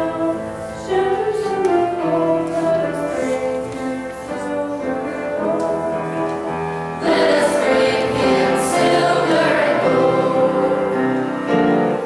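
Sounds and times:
choir singing a christmas song: 0:00.0 - 0:12.0.

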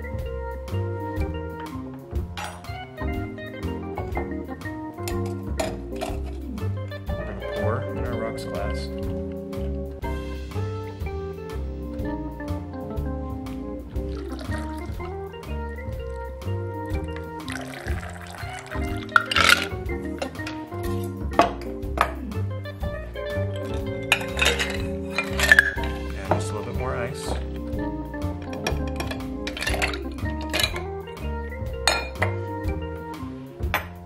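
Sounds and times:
background music with bass line: 0:00.0 - 0:34.0
cocktail poured through strainer: 0:14.1 - 0:15.0, 0:17.4 - 0:19.8
glass clinks: 0:19.2 - 0:19.7, 0:23.6 - 0:26.0, 0:28.5 - 0:30.8, 0:31.9 - 0:32.3.

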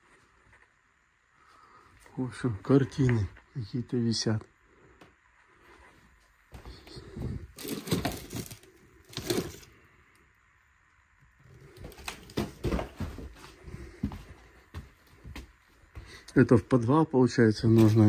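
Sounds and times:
knocks and rustles of handling: 0:06.6 - 0:09.7, 0:11.7 - 0:15.6.

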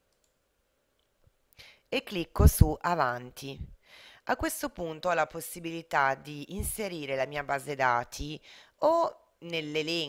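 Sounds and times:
person speaking: 0:02.0 - 0:10.0
person breathing in: 0:03.8 - 0:04.2.

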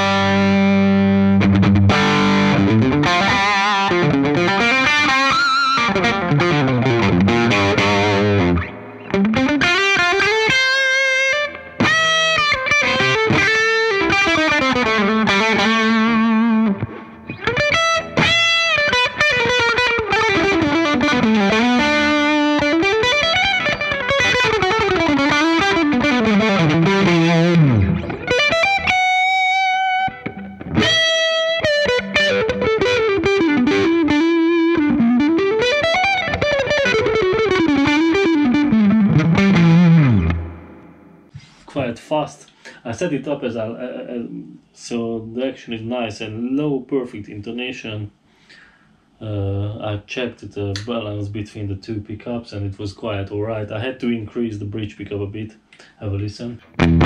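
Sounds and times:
electric guitar solo: 0:00.0 - 0:41.3, 0:56.7 - 0:57.0.

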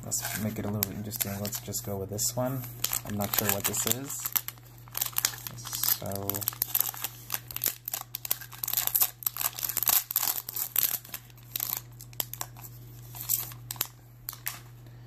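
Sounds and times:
wrapper crinkling and ripping: 0:00.2 - 0:01.8, 0:02.5 - 0:14.7.

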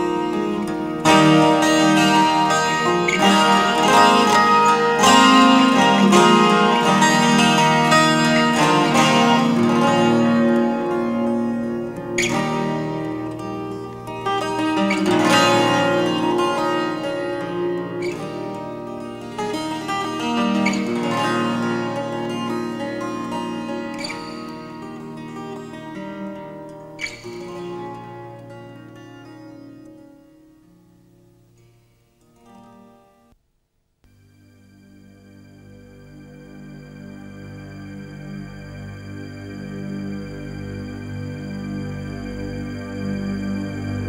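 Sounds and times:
fingerpicked acoustic guitar: 0:00.0 - 0:33.4, 0:34.0 - 0:44.0.

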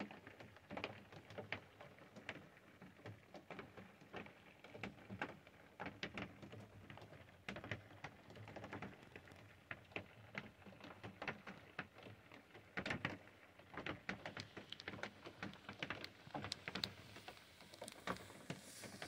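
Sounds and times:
light taps and ticks: 0:00.3 - 0:19.0.

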